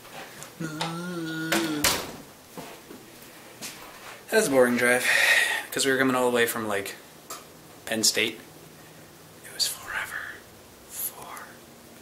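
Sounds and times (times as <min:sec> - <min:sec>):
man whispering: 0:00.6 - 0:01.9, 0:09.4 - 0:11.6.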